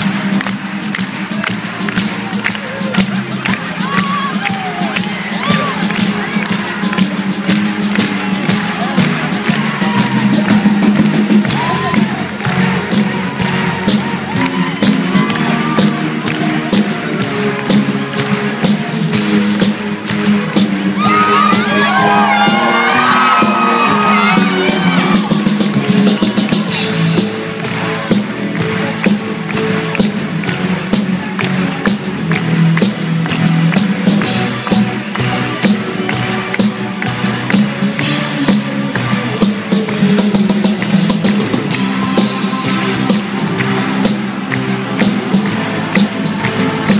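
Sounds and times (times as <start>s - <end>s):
audience cheering and whooping: 0.0s - 18.5s, 20.8s - 27.0s, 41.4s - 46.9s
live rock band playing: 0.0s - 46.9s.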